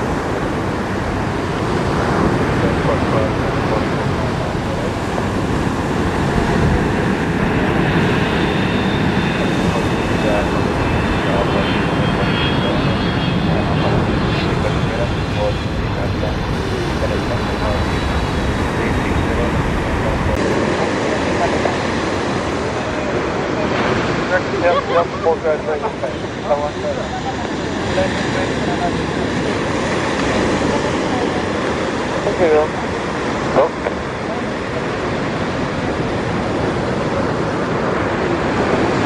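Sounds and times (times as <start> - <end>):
jet engines running: 0.0 - 39.0.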